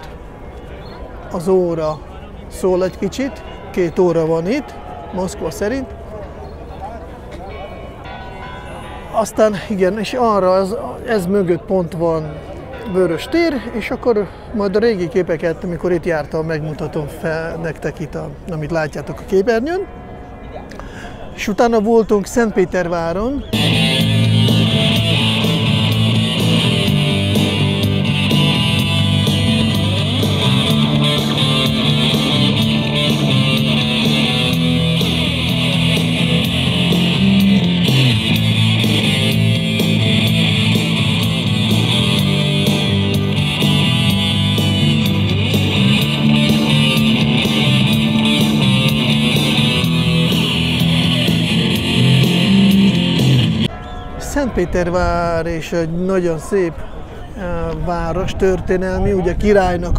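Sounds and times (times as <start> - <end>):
electric bass line: 23.6 - 53.7
strummed guitar: 23.6 - 53.7.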